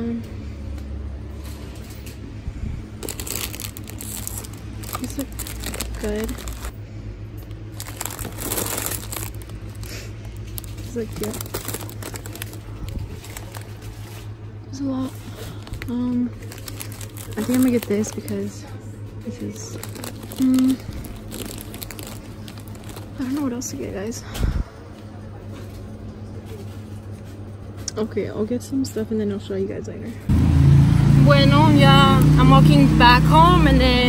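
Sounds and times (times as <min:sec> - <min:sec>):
low hum: 0:00.0 - 0:27.8
plastic snack bags crinkling: 0:03.0 - 0:06.8, 0:07.4 - 0:14.4, 0:15.0 - 0:24.0.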